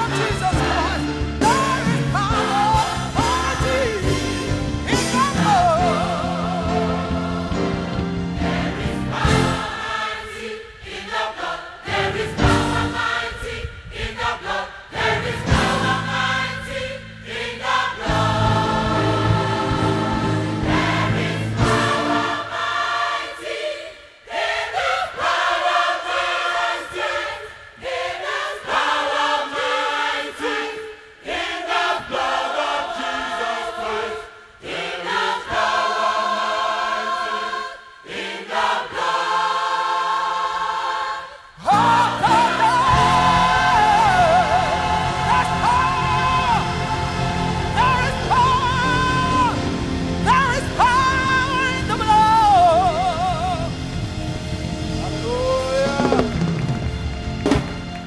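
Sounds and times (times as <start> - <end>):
gospel choir singing: 0.0 - 57.9.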